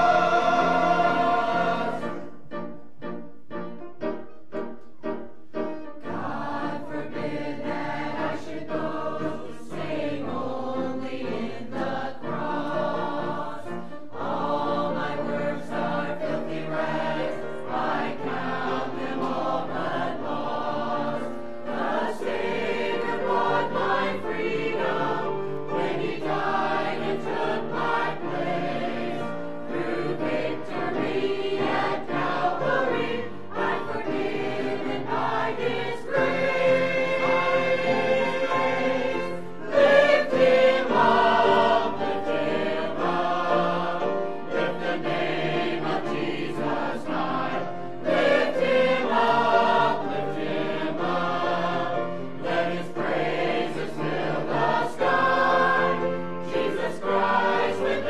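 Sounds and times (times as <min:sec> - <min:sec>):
mixed choir singing: 0:00.0 - 0:02.7, 0:06.0 - 0:58.0.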